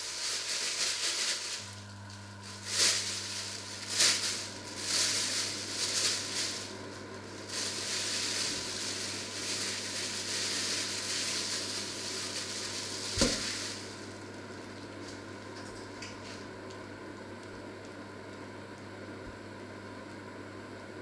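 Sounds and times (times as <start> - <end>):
steady low hum: 0.0 - 21.0
oil sizzling in a pan: 3.0 - 14.2.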